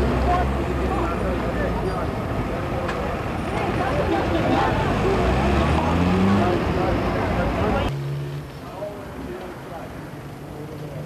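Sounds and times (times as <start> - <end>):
crowd talking: 0.0 - 11.0
motor vehicle rumble: 0.0 - 11.0.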